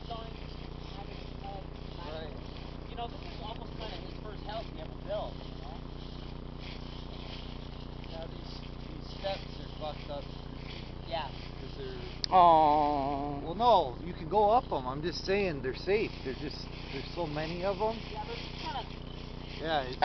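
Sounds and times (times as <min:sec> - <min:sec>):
footsteps in dry leaves: 0:00.0 - 0:20.0
low steady hum: 0:00.0 - 0:20.0.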